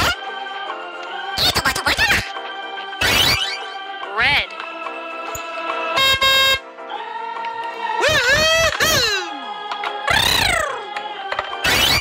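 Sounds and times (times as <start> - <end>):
electronic background music: 0.0 - 12.0
toy car horn honk: 5.9 - 6.7.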